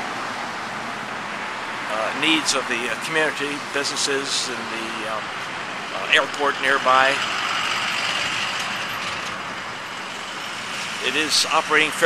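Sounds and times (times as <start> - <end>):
road traffic passing: 0.0 - 12.0.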